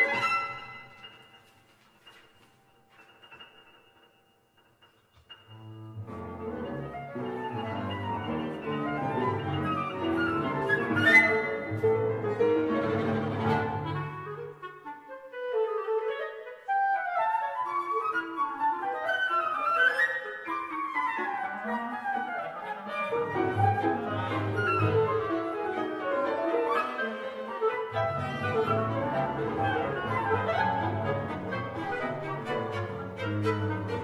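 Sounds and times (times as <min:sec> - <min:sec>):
chamber ensemble playing: 0:05.4 - 0:14.7, 0:18.2 - 0:34.0.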